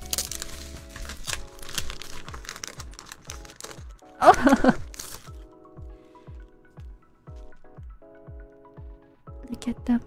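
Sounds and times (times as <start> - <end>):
paper envelope tearing: 0.0 - 5.4
background music with steady beat: 0.0 - 10.0.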